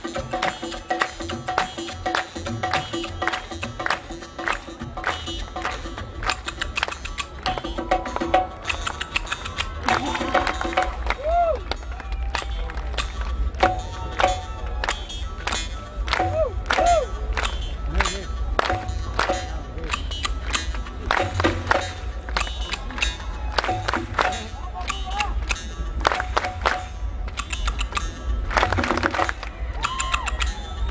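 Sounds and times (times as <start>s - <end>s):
sharp percussion strikes: 0.0s - 30.9s.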